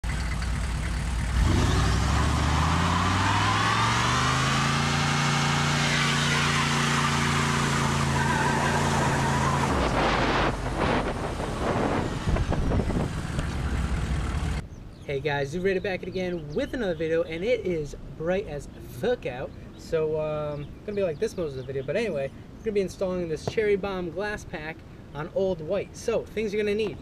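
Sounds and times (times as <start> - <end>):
pickup engine revving: 0.0 - 14.6
tire squealing: 0.0 - 14.6
uneven rumbling and crackle: 9.6 - 14.6.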